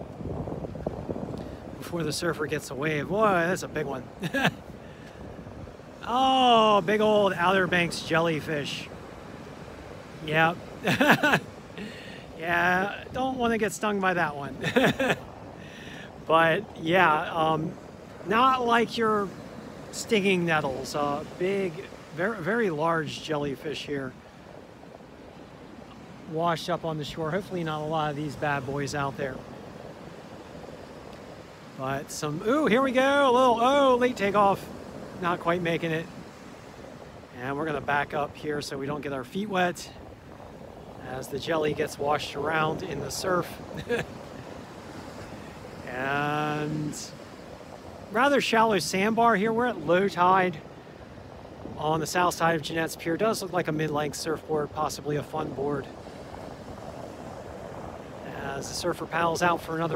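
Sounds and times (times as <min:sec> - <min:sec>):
ocean waves breaking: 0:00.0 - 0:59.9.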